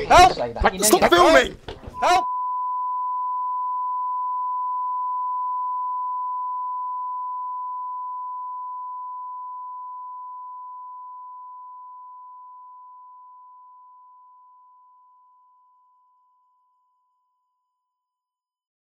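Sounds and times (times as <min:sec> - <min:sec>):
pure test tone beep: 0:02.0 - 0:12.7.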